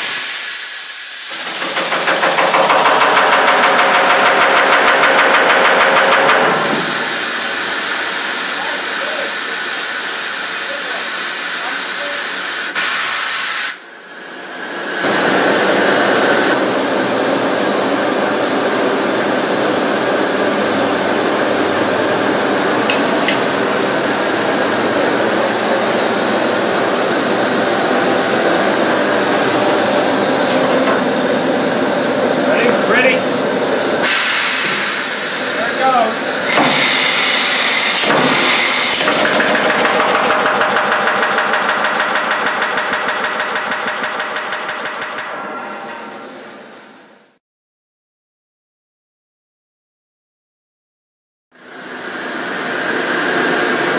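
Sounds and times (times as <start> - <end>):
pneumatic equipment hissing: 0.0 - 3.8, 6.4 - 16.6, 20.8 - 40.4
pneumatic riveter pulsing: 0.0 - 13.8, 20.7 - 45.2.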